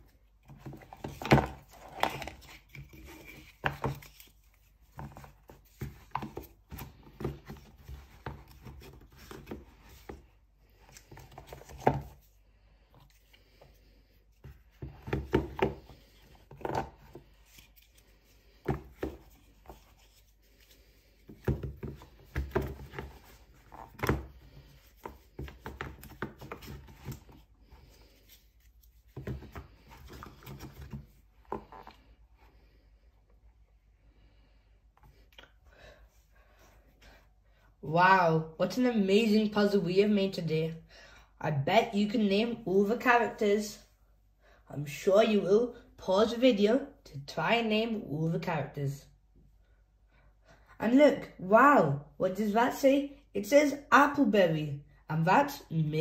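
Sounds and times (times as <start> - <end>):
books rubbing and scraping: 0.1 - 12.4, 13.0 - 32.8.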